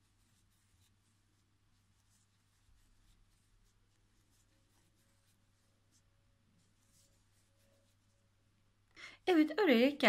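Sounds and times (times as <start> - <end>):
crochet hook rustling yarn: 0.0 - 8.7.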